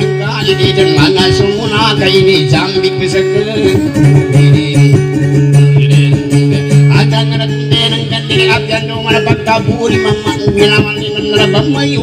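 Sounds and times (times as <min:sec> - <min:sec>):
acoustic guitar picking: 0:00.0 - 0:12.0.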